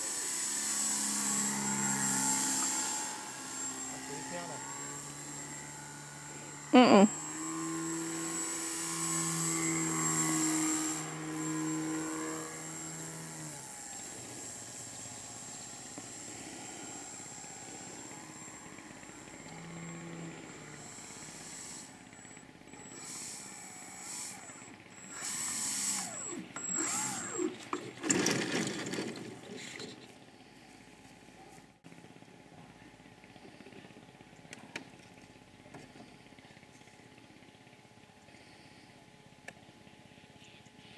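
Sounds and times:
model airplane motor humming: 0.0s - 40.1s.

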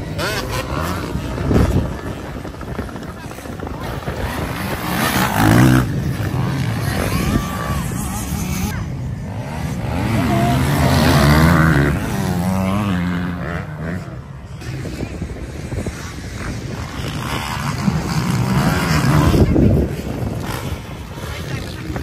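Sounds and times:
motocross bike engines revving: 0.0s - 22.0s.

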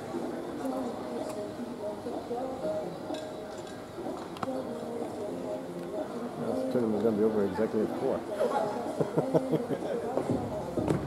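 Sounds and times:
indistinct voices in a large hall: 0.0s - 11.0s.

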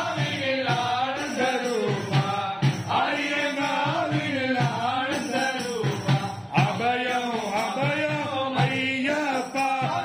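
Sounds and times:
voices chanting devotional song: 0.0s - 10.0s.

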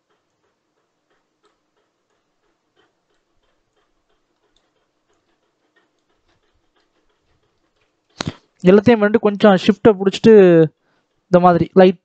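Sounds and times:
computer mouse clicking: 0.0s - 8.8s.

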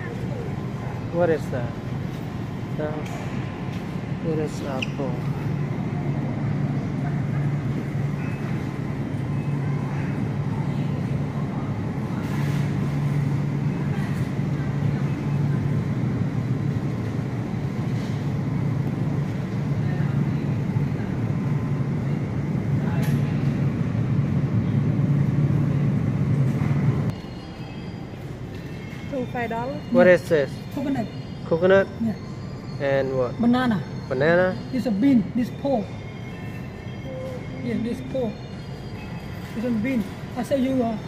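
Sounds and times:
refrigerated display cases humming: 0.0s - 41.0s.

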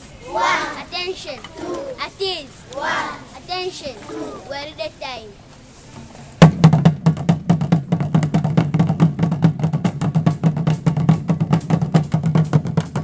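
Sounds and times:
marching drums: 6.4s - 13.0s.

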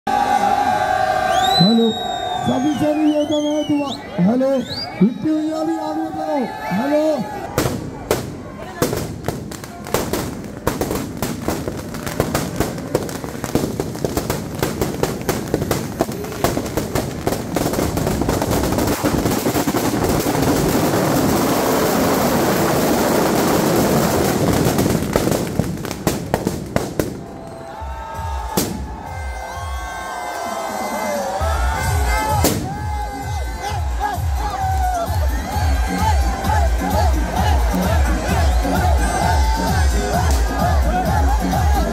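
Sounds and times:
crowd: 0.0s - 41.9s
firecrackers banging and crackling: 7.5s - 27.6s, 28.4s - 29.0s, 32.1s - 33.0s
dance music with singing: 31.5s - 41.9s.

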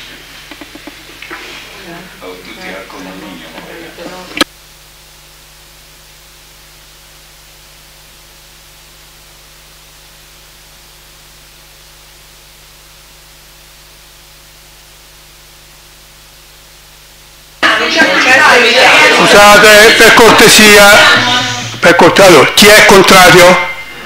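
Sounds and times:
electronic hiss with faint hum: 0.0s - 24.0s.

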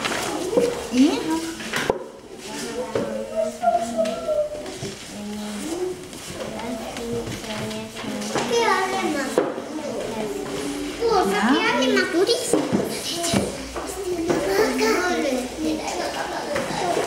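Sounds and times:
young children speaking: 2.3s - 17.0s.

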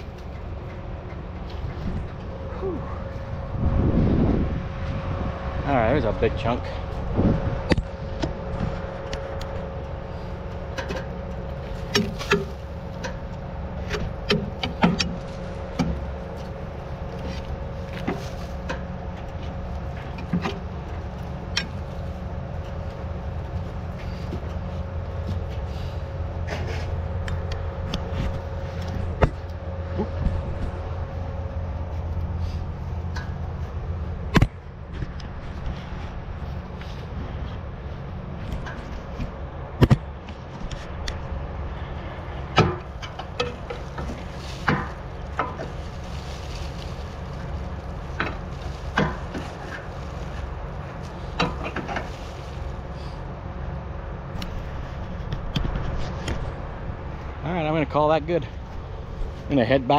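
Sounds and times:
tractor engine idling: 0.0s - 59.9s.

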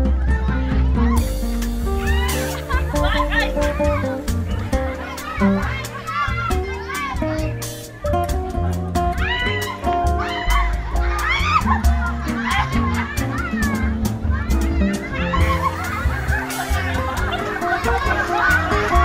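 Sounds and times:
children shouting and squealing: 0.0s - 19.0s
music with heavy bass: 0.0s - 19.0s.

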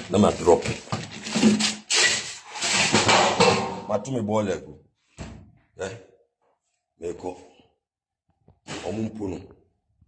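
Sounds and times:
rubbing and scraping: 0.0s - 3.7s.

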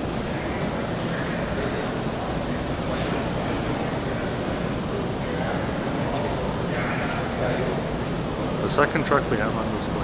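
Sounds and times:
exhibition hall din: 0.0s - 10.0s.

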